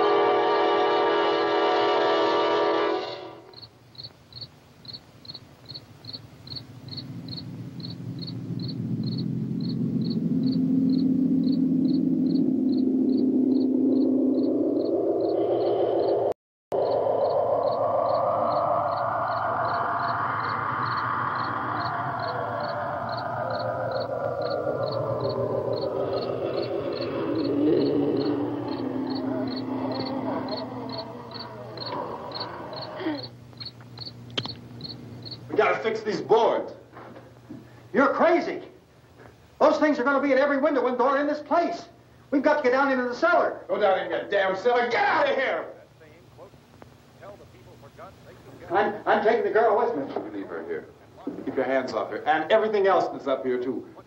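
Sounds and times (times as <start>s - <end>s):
crickets chirping: 2.2s - 54.0s
rising and falling music tone: 6.9s - 32.0s
sustained music chord: 7.1s - 14.6s.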